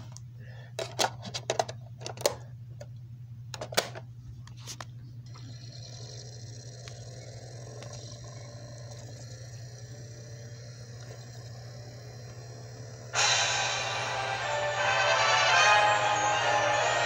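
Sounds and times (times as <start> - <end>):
disc drive whir and whine: 3.6 - 17.0.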